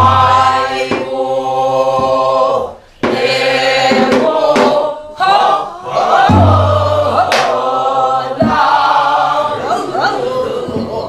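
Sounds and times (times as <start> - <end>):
barrel drum strokes: 0.0 - 1.2, 3.0 - 4.8, 6.0 - 7.6
folk song with wide vibrato: 0.0 - 11.0.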